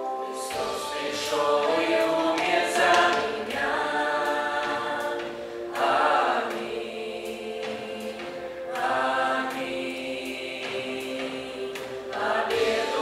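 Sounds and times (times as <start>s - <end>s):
choir singing: 0.0s - 13.0s.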